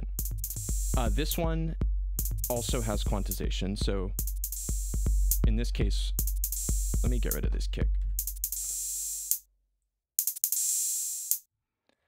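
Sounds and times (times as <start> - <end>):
deep bass tone: 0.0 - 8.3
drum machine pattern: 0.0 - 9.4, 10.2 - 11.4.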